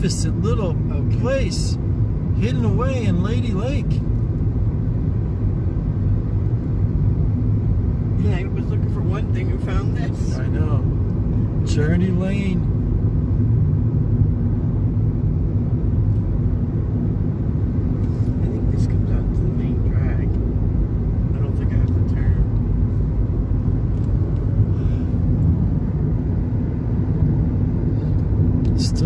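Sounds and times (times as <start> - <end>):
car engine rumble: 0.0 - 29.0
tyres on asphalt road: 0.0 - 29.0.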